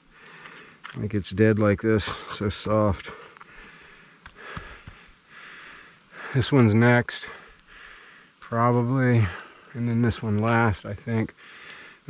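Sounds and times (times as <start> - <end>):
faint breathing: 0.0 - 0.9, 3.1 - 6.5, 7.2 - 8.5, 9.1 - 9.8, 11.3 - 12.0.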